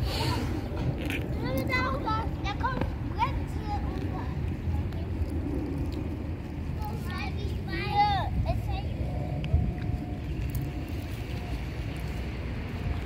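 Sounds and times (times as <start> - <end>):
children calling and chattering: 0.0 - 12.2
low outdoor rumble: 0.0 - 13.0.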